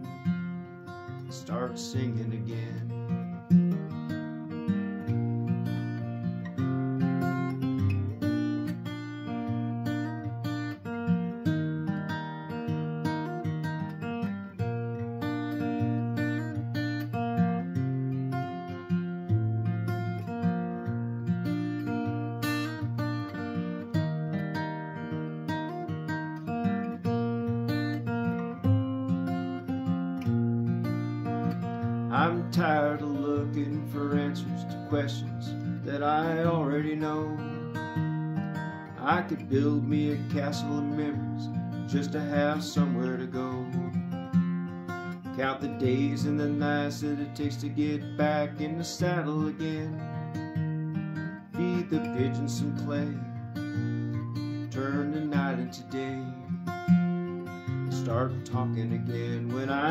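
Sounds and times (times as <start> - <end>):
acoustic guitar strumming chords: 0.0 - 59.9.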